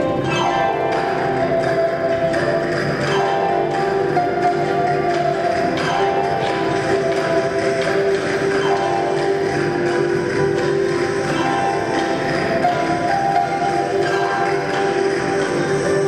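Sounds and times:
flute melody: 0:00.0 - 0:16.0
guitars: 0:00.0 - 0:16.0
harp: 0:00.0 - 0:16.0.

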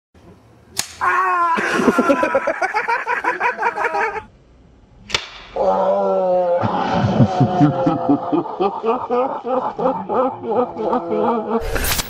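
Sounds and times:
sharp slap-like crack: 0:00.7 - 0:01.0, 0:05.0 - 0:05.6
person yelling: 0:01.0 - 0:02.4.

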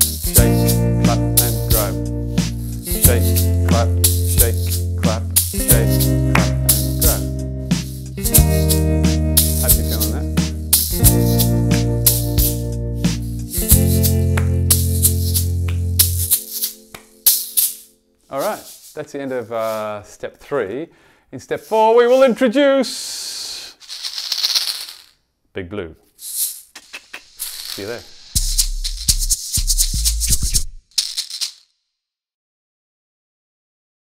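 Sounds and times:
egg shakers shaken: 0:00.0 - 0:00.8, 0:02.7 - 0:08.8, 0:09.4 - 0:10.2, 0:10.8 - 0:19.8, 0:23.8 - 0:25.1, 0:26.2 - 0:31.7
low bass notes: 0:00.0 - 0:16.4
backing track: 0:00.0 - 0:18.6.

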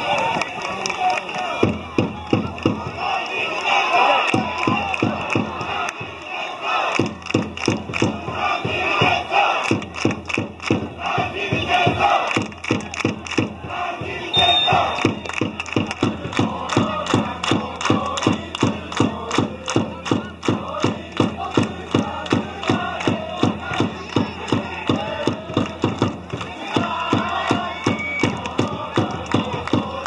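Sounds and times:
supporters chanting in unison: 0:00.0 - 0:30.0
steady drum beat: 0:01.4 - 0:03.2, 0:04.3 - 0:06.2, 0:07.0 - 0:30.0.

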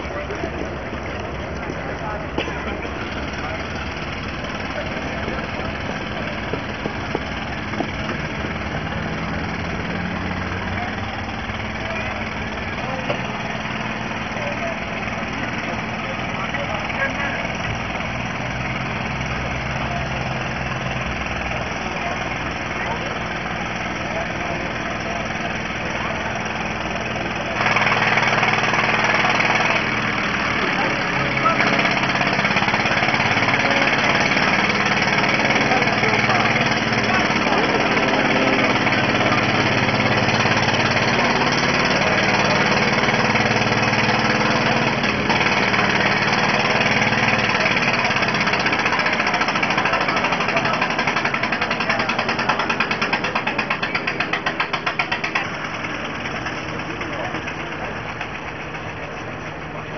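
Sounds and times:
crowd voices: 0:00.0 - 0:59.9
vehicle engine idling: 0:00.0 - 0:59.9.

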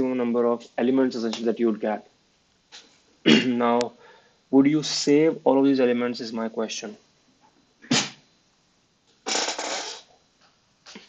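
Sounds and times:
man's throat noise: 0:02.8 - 0:03.7, 0:07.8 - 0:08.2, 0:09.2 - 0:10.2
breathy exhale: 0:04.0 - 0:04.4.

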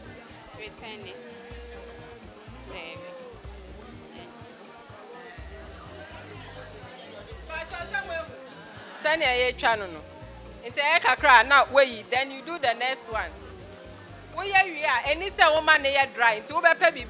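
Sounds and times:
person speaking: 0:00.0 - 0:04.5, 0:05.5 - 0:13.5, 0:14.3 - 0:17.0
background music: 0:00.0 - 0:17.0.

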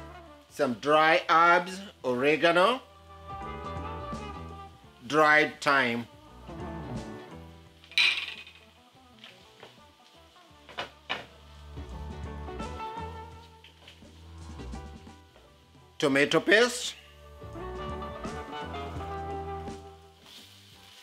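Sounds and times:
background music: 0:00.0 - 0:21.0
spatula stirring in a pot: 0:20.2 - 0:21.0.

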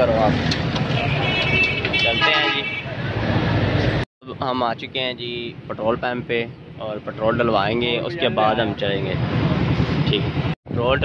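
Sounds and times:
street traffic noise: 0:00.0 - 0:11.0
vehicle horn: 0:00.9 - 0:02.9.

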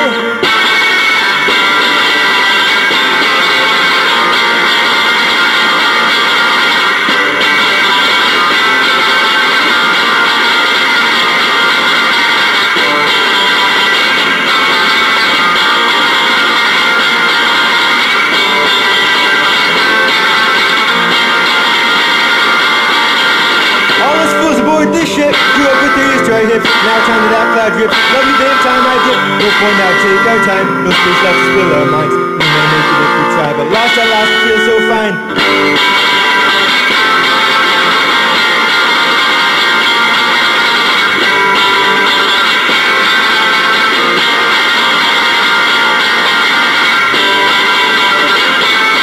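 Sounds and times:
electric guitar strumming: 0:00.0 - 0:49.0.

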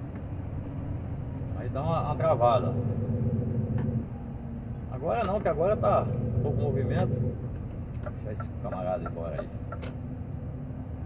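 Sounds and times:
diesel truck engine running: 0:00.0 - 0:11.0
road rumble: 0:00.0 - 0:11.0.

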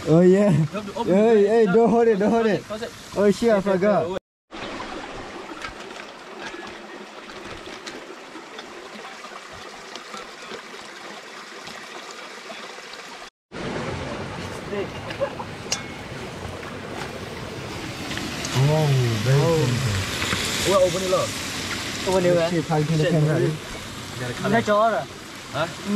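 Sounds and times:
creek water rushing: 0:00.0 - 0:25.9
voices: 0:18.4 - 0:21.3.

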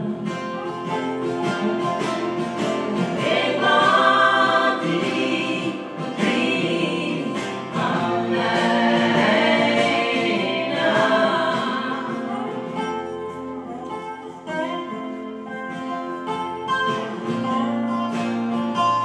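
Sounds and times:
acoustic guitar: 0:00.0 - 0:19.0
lap steel guitar: 0:00.0 - 0:19.0
woman singing: 0:03.1 - 0:13.1.

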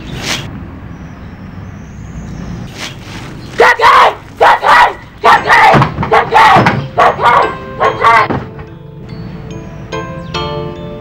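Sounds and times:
voices shouting a chant: 0:03.6 - 0:08.4.

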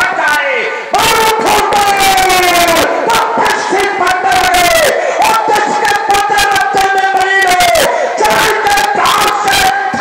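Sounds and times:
man crying out over loudspeaker: 0:00.0 - 0:10.0.

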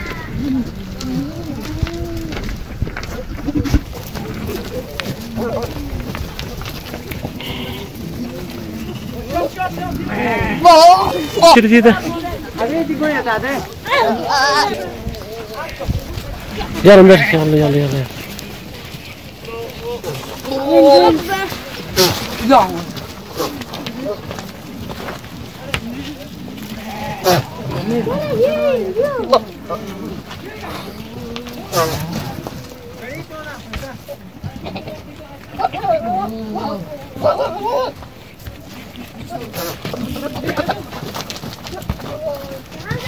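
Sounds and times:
hooves clicking on stones: 0:00.0 - 0:43.0
goats bleating: 0:03.6 - 0:33.0, 0:34.4 - 0:38.0
goat bleating: 0:07.2 - 0:12.7, 0:26.6 - 0:32.5, 0:34.6 - 0:36.1.

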